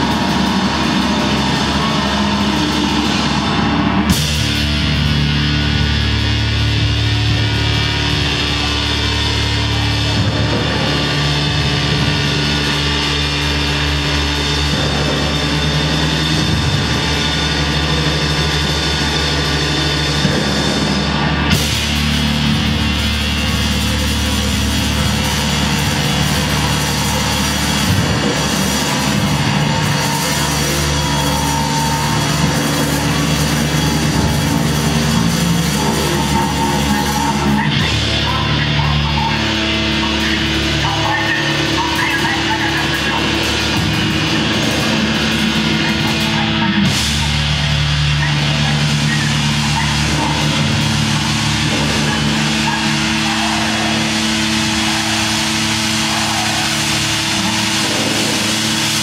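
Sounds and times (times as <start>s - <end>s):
distorted electric guitar: 0.0s - 59.0s
drum kit: 0.0s - 59.0s.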